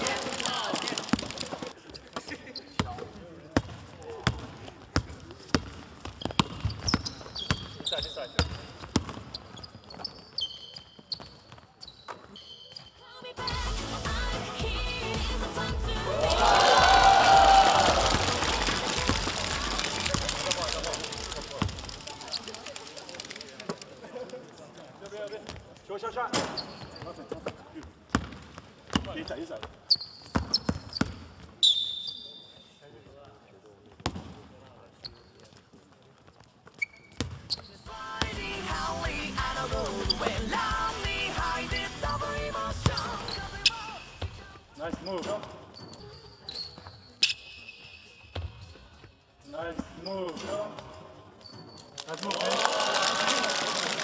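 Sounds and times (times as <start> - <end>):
basketball bouncing on gym floor: 2.7 - 12.3, 26.8 - 31.6, 33.9 - 34.5, 37.0 - 38.4
crowd voices: 13.3 - 25.2
background music with steady beat: 13.4 - 20.4, 37.9 - 44.6.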